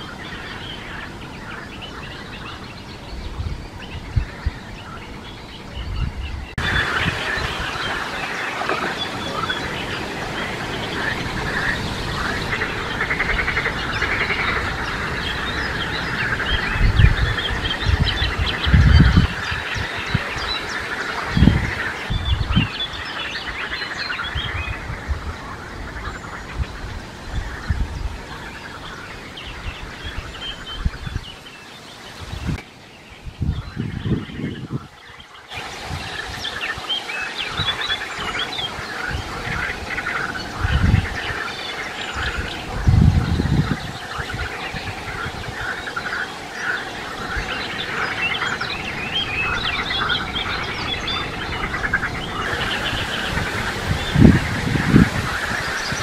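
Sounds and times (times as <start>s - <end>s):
coot chicks peeping: 0.0s - 31.8s, 33.4s - 56.0s.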